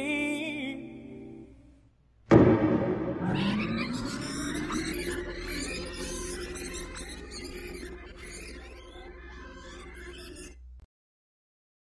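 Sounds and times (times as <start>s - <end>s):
jumble of animal calls: 3.2s - 10.6s.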